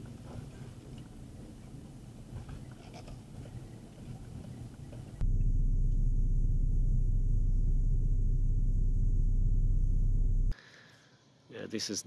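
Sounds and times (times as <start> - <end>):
vehicle rumble from inside cabin: 5.2 - 10.6.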